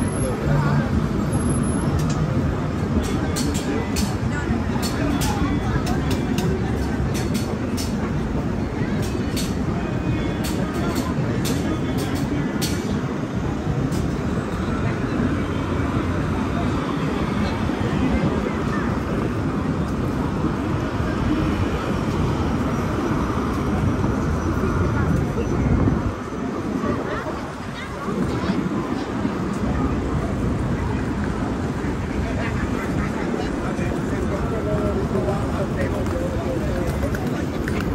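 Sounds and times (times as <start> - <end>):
crowd chatter: 0.0 - 37.9
traffic running past: 0.0 - 37.9.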